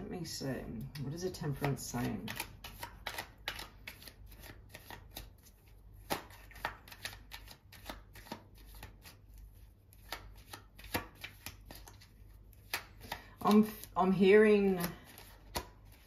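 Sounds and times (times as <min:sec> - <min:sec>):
cards being shuffled: 0:00.8 - 0:16.0.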